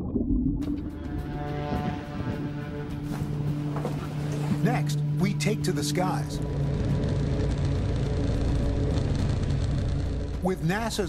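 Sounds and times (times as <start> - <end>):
aircraft engines droning: 0.9 - 11.0.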